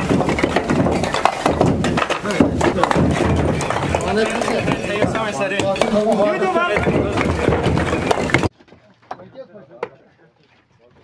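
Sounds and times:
hammers knocking on brick wall: 0.0s - 8.5s
men talking and calling out: 0.0s - 11.0s.

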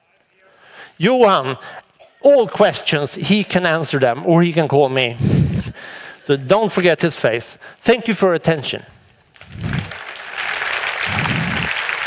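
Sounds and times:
audience applauding: 9.4s - 12.0s.

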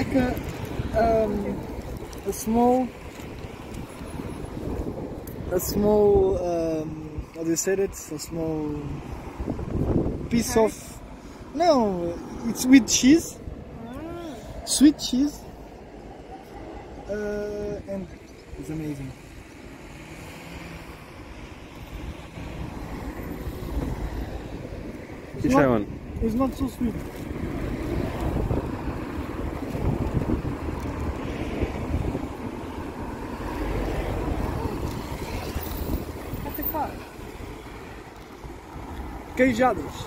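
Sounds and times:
wind buffeting microphone: 0.0s - 18.8s, 20.9s - 40.0s
road traffic: 0.0s - 40.0s.

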